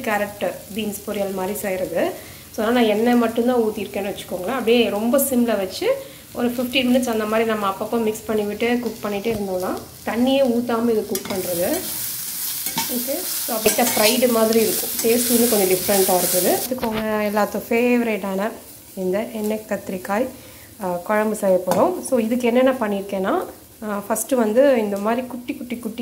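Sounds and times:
vegetables sizzling in a pan: 0:00.0 - 0:26.0
metal spatula stirring in saucepan: 0:11.1 - 0:16.4.

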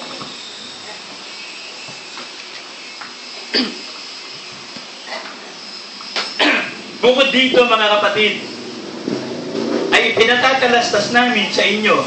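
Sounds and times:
short cough: 0:03.5 - 0:03.9, 0:05.1 - 0:05.4, 0:06.4 - 0:06.8
steady background hiss: 0:05.8 - 0:12.0.

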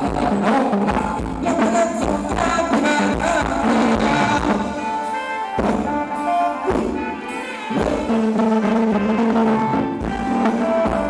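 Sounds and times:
live band dance song: 0:00.0 - 0:11.0
drum strokes: 0:02.2 - 0:11.0.

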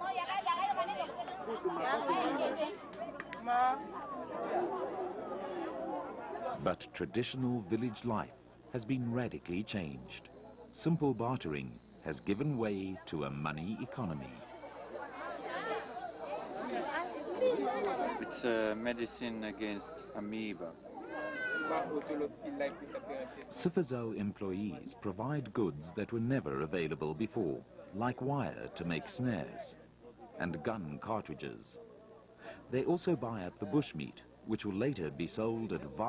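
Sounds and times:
people chattering: 0:00.0 - 0:36.0
people talking at once: 0:00.0 - 0:36.0.

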